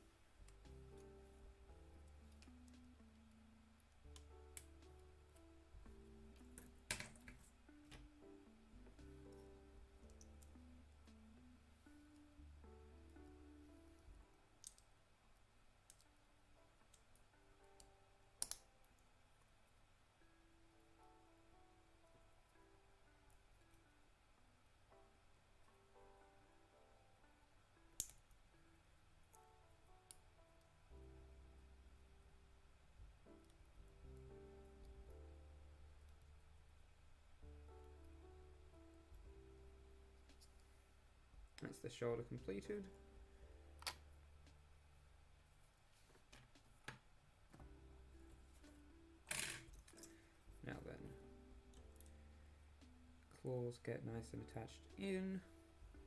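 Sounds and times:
faint background music: 0:00.0 - 0:56.0.

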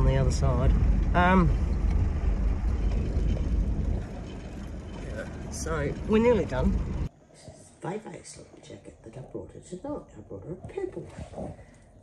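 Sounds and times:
vehicle engine and tyre rumble: 0:00.0 - 0:07.1.

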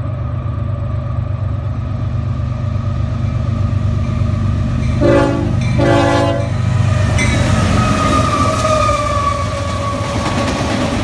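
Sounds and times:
locomotive rumble: 0:00.0 - 0:11.0
locomotive whine: 0:00.0 - 0:11.0
train horn blasts: 0:05.0 - 0:06.6.

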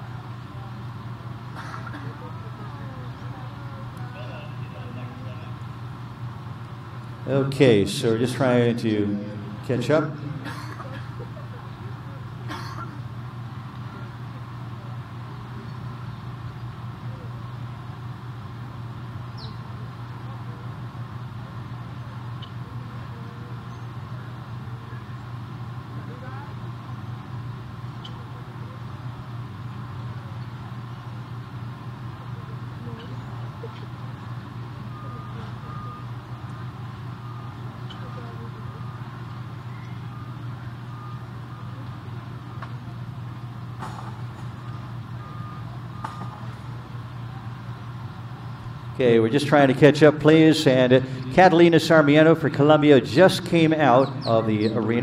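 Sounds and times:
faint background ambience: 0:00.0 - 0:55.0
steady low hum: 0:00.0 - 0:55.0.

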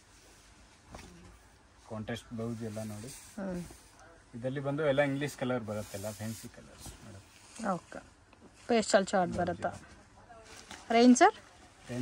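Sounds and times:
fabric rustling: 0:00.0 - 0:12.0.

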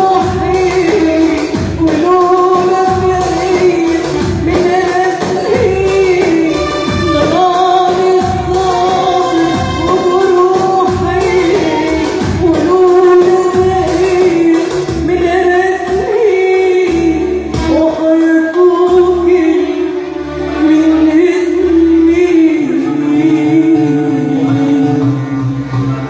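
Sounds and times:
electronic keyboard accompaniment: 0:00.0 - 0:26.0
woman singing into a microphone: 0:00.0 - 0:26.0.

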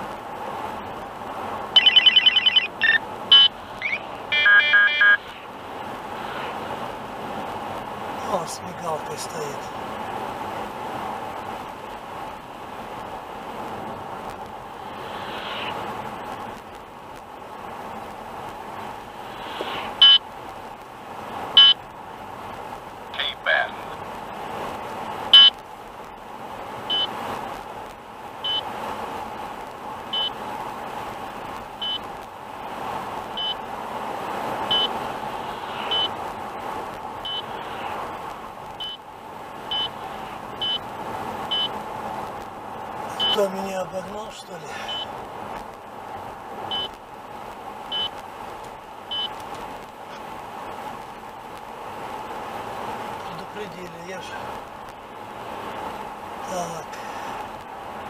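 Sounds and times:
tyre and engine hum: 0:00.0 - 0:58.0
short high beeps: 0:01.8 - 0:05.3.

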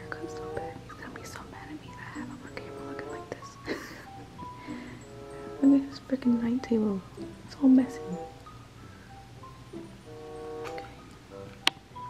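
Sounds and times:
soft background music: 0:00.0 - 0:12.0
person whispering: 0:00.2 - 0:03.4.

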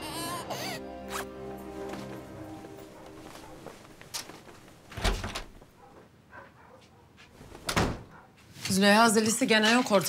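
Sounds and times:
door opening with sharp thud: 0:04.9 - 0:05.6, 0:07.6 - 0:08.1
door thud: 0:05.0 - 0:05.6, 0:07.6 - 0:08.1.

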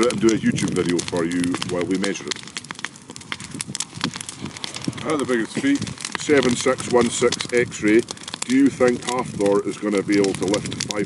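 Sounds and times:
bonfire crackling and popping: 0:00.0 - 0:11.0.

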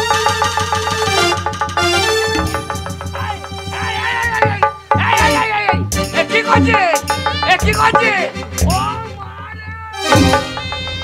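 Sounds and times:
stage show music with low beat: 0:00.0 - 0:11.0
sliding wailing high tones: 0:02.0 - 0:05.7.

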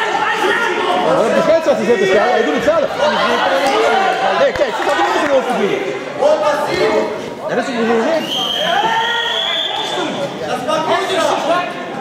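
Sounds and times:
referee's whistle blast: 0:08.2 - 0:10.0
people shouting: 0:08.5 - 0:10.2.

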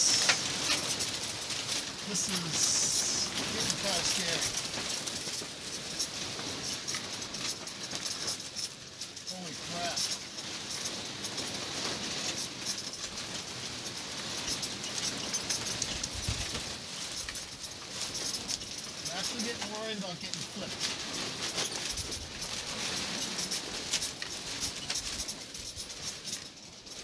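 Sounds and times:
camper rattling and clicking: 0:00.0 - 0:27.0.

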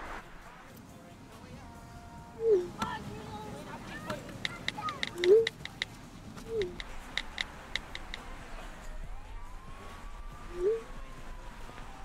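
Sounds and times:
smartphone keyboard taps: 0:04.1 - 0:05.9, 0:06.6 - 0:08.2
faint long rising tone: 0:08.5 - 0:12.0.

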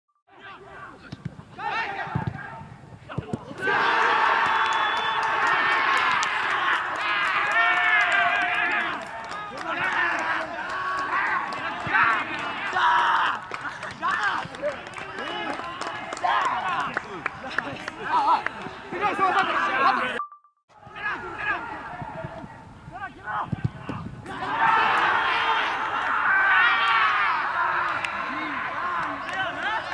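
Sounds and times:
young men shouting and cheering: 0:03.5 - 0:20.2, 0:20.8 - 0:23.5, 0:24.3 - 0:29.9
football thuds: 0:23.4 - 0:24.2.

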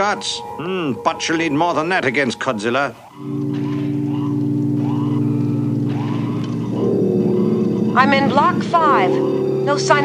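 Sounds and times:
synthesized drone: 0:03.0 - 0:10.0.

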